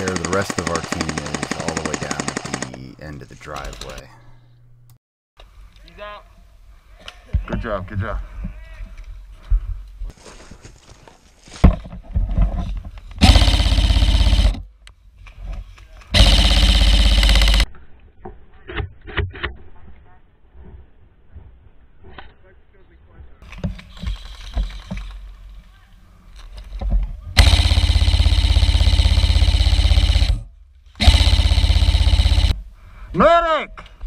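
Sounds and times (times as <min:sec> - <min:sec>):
airsoft rifle full-auto bursts: 0:00.0 - 0:02.8, 0:13.2 - 0:14.6, 0:16.2 - 0:17.7, 0:27.4 - 0:32.6.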